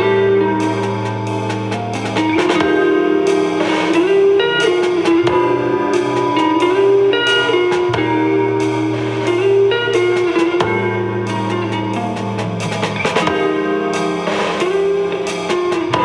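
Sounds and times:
bass line: 0.0 - 16.0
drums: 0.0 - 16.0
electric guitar melody: 0.0 - 16.0.

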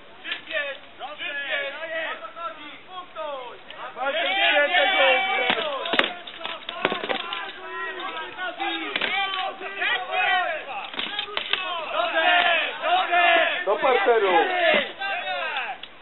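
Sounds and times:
people shouting: 0.2 - 15.9
weapons clanging on armour: 5.0 - 12.7.

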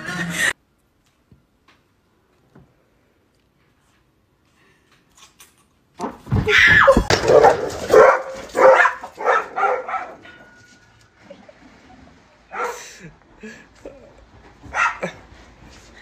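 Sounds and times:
dog barking and yelping: 6.9 - 10.4, 12.5 - 12.9, 14.6 - 15.2.

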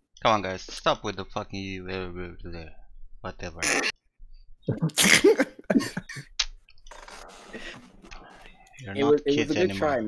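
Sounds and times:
man laughing hard: 5.0 - 6.2.

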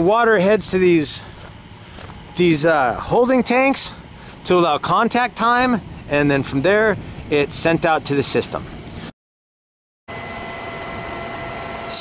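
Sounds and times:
faint whining tones: 0.0 - 4.8, 10.1 - 12.0
steady background hum: 0.0 - 9.1, 10.1 - 12.0.

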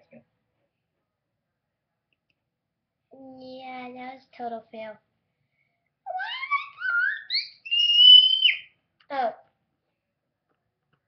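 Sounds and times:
child wailing and squealing: 6.1 - 8.6.

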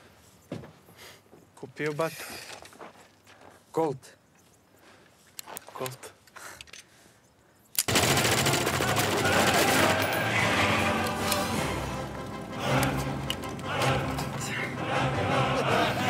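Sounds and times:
rapid automatic gunfire: 7.9 - 10.4
film music: 7.9 - 16.0.

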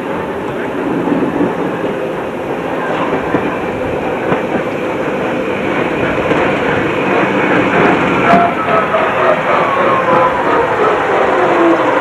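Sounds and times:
diesel locomotive engine running: 0.0 - 12.0.

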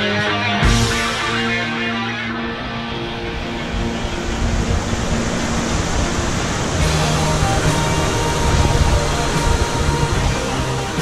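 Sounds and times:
held musical notes: 0.0 - 11.0
waterfall roaring: 0.5 - 11.0.

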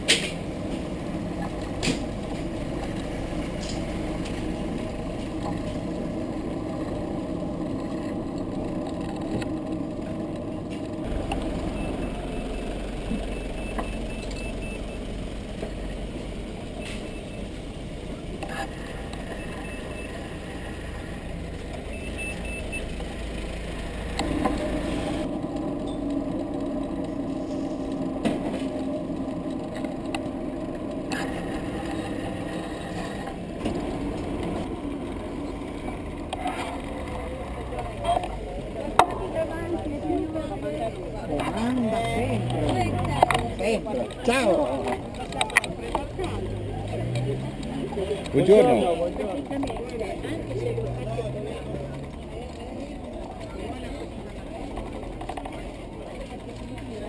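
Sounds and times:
idling vehicle engine: 0.0 - 57.0
high beeps: 11.0 - 15.1, 19.2 - 20.6, 21.9 - 23.0, 24.3 - 30.2.

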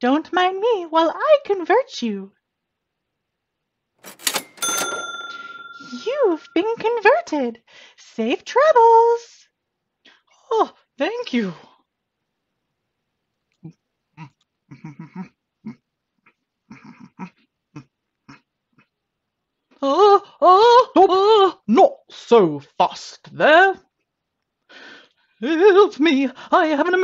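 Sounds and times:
cash register clatter: 4.0 - 6.6
bright bell ding: 4.1 - 6.6.

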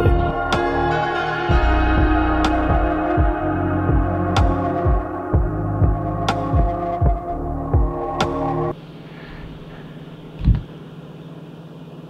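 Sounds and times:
low room hum: 8.7 - 12.0.

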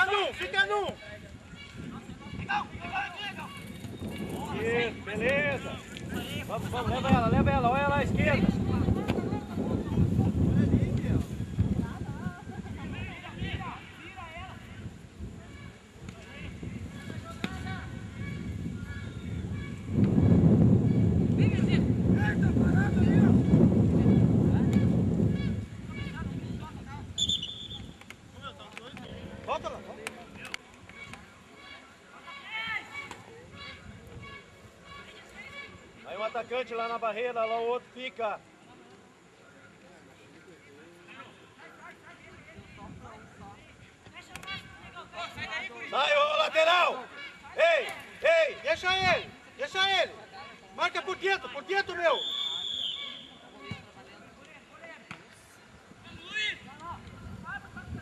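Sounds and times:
wind buffeting microphone: 1.0 - 31.4, 33.2 - 36.0, 42.3 - 44.0, 55.8 - 58.0.

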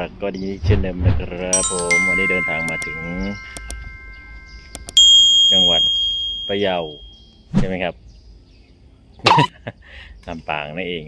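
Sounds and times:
notification bell ding: 1.6 - 7.2
chime tone: 1.6 - 7.3
mouse clicks: 3.5 - 3.8, 4.7 - 5.0.

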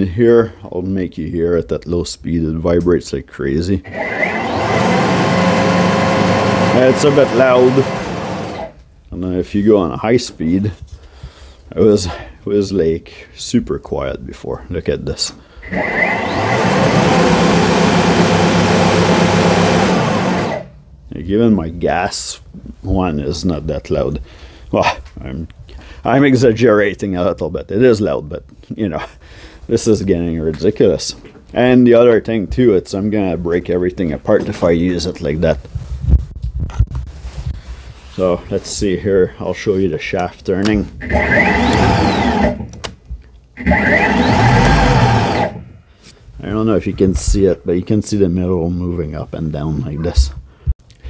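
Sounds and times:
snow thrower running: 3.9 - 8.8, 15.6 - 20.8, 41.0 - 42.7, 43.6 - 45.6
clicks: 40.6 - 45.6.

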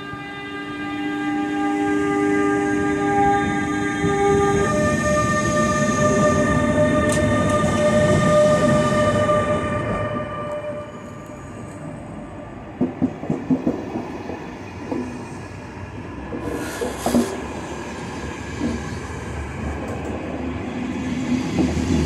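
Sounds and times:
electric locomotive whine: 0.0 - 22.0
train rumbling: 0.0 - 22.0.

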